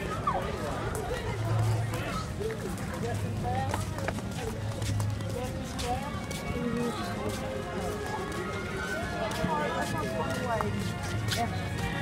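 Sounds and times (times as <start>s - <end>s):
flip-flop footsteps on concrete: 0.7s - 12.0s
music: 3.1s - 12.0s.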